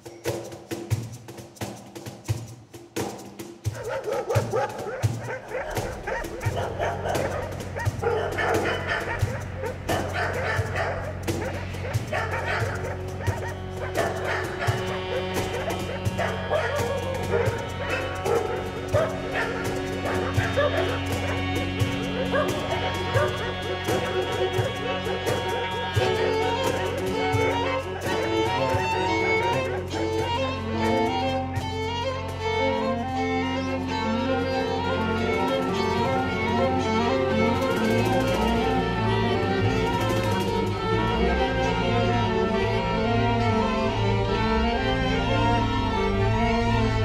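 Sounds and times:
chamber ensemble playing: 3.2s - 47.0s.

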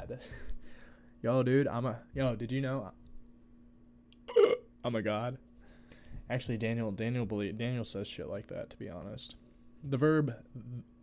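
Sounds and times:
faint steady hum: 0.0s - 11.0s
man hiccup-like vocal sound: 4.3s - 4.7s.

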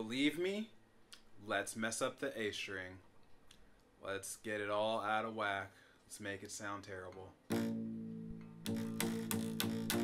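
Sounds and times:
detuned guitar string plucked: 7.5s - 10.0s.

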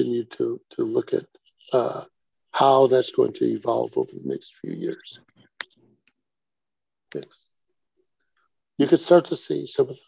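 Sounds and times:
man speaking: 0.0s - 5.3s, 8.8s - 10.0s.

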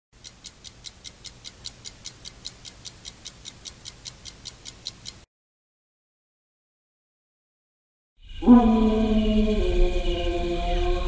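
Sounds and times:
rapid ticking: 0.2s - 5.3s.

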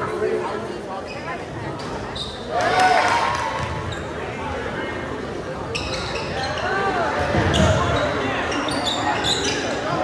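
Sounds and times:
spectators' voices: 0.0s - 10.0s
sneakers squeaking: 1.0s - 2.5s, 3.6s - 4.4s, 5.6s - 10.0s.

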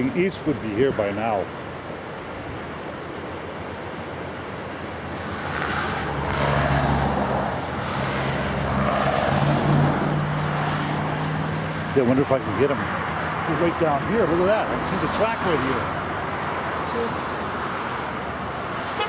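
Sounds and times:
river water rushing: 0.0s - 19.0s.

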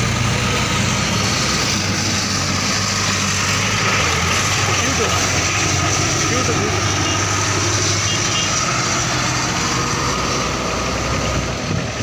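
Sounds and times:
diesel tractor engine: 0.0s - 12.0s
tyre and road noise: 0.0s - 12.0s.

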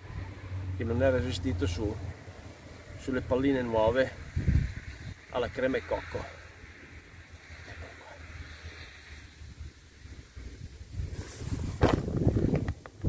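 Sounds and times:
wind buffeting microphone: 1.6s - 6.2s, 6.9s - 13.0s.

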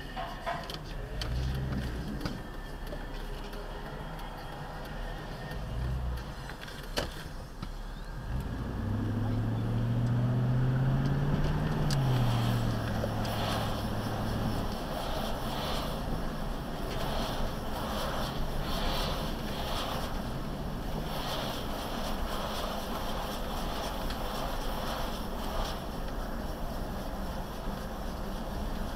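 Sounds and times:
car engine accelerating: 0.9s - 28.9s.

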